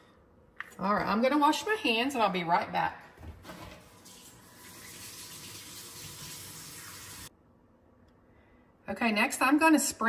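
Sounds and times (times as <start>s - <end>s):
tap water running into sink: 4.0s - 7.3s.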